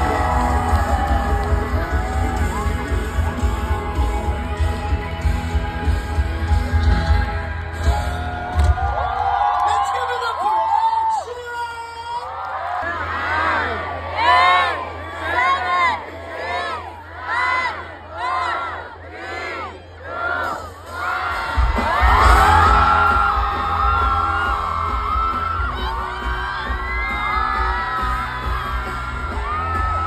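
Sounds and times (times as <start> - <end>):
loud amplified music with heavy bass: 0.0 - 8.9, 20.4 - 30.0
crowd chanting: 13.0 - 23.0.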